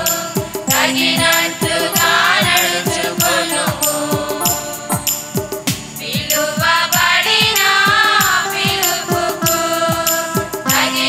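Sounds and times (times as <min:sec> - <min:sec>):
high percussion strokes: 0:00.0 - 0:11.0
steady drum beat: 0:00.0 - 0:11.0
women singing a hymn: 0:00.0 - 0:11.0.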